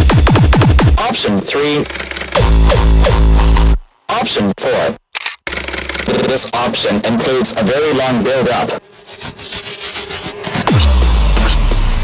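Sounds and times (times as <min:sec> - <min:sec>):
rapid electronic clicks: 0:00.0 - 0:03.8, 0:05.0 - 0:07.6.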